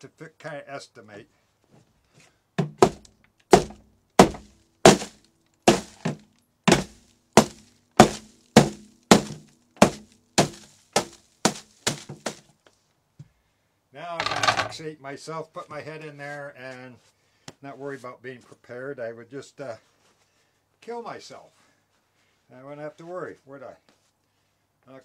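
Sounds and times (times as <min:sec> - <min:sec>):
hammer breaking dry ice: 0:02.6 - 0:12.4.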